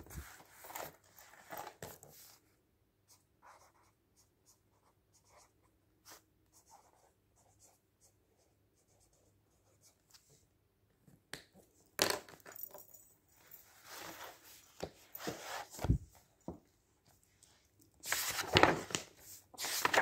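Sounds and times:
paper rustling: 0.0 - 2.3, 18.0 - 20.0.

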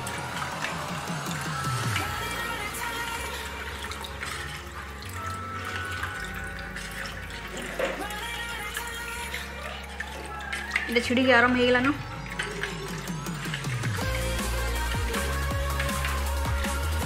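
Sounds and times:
background music: 0.0 - 17.0
milk pouring into steel pan: 0.0 - 17.0.

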